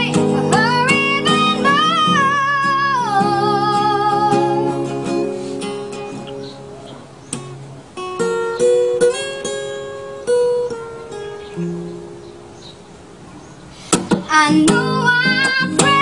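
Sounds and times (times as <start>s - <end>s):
acoustic guitar: 0.0s - 16.0s.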